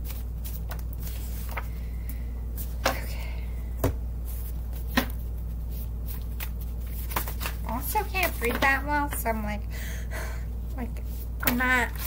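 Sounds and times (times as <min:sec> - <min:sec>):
cards being shuffled: 0:00.0 - 0:01.8, 0:04.3 - 0:09.2, 0:11.1 - 0:12.0
woman speaking: 0:07.6 - 0:09.7, 0:10.7 - 0:12.0.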